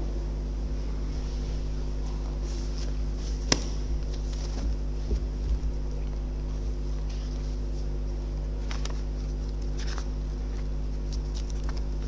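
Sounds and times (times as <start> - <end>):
low electrical hum: 0.0 - 12.0
paper rustling: 1.1 - 12.0.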